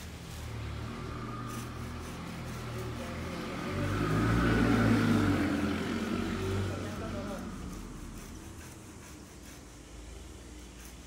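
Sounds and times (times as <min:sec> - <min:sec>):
road vehicle passing by: 0:00.0 - 0:11.0.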